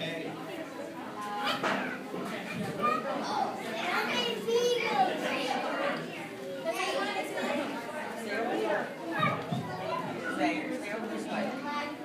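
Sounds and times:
crowd chatter: 0.0 - 12.0
children's voices: 0.5 - 12.0.

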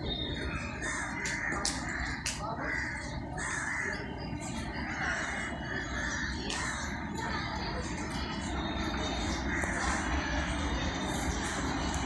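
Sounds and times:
crows cawing: 0.2 - 7.0, 9.3 - 10.1.

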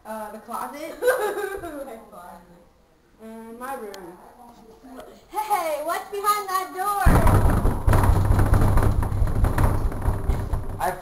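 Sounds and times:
fist pounding on door: 7.1 - 11.0.

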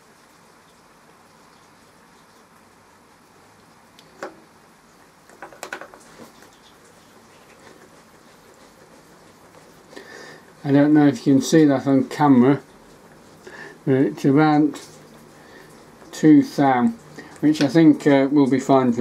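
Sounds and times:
clicks and knocks: 5.3 - 6.1.

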